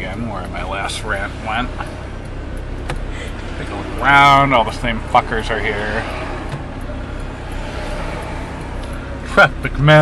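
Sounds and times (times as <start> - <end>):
car rumbling in traffic: 0.0 - 10.0.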